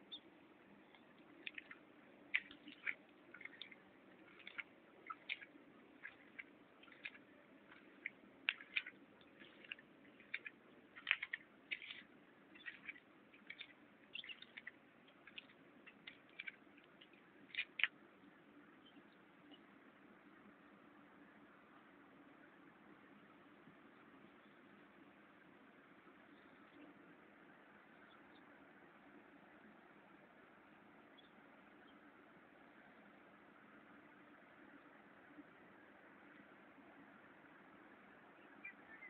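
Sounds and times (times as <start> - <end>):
terns calling: 0.0 - 18.0, 38.4 - 39.0
faint low hum: 0.0 - 39.0.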